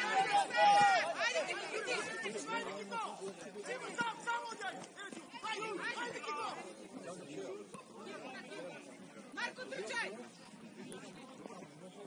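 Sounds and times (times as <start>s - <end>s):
people shouting: 0.0s - 6.6s
outdoor background noise: 0.0s - 12.0s.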